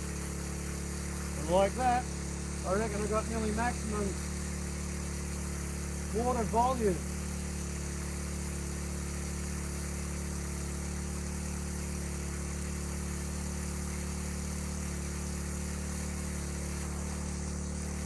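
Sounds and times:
hose nozzle spray hissing: 0.0 - 18.0
water pump engine running: 0.0 - 18.0.

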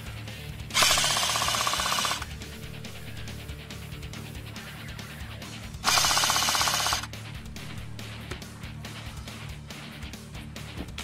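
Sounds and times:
airsoft gun full-auto burst: 0.7 - 2.3, 5.8 - 7.1.

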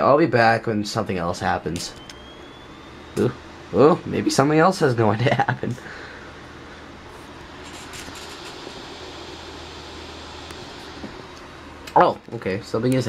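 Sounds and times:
steady background noise: 0.0 - 13.0.

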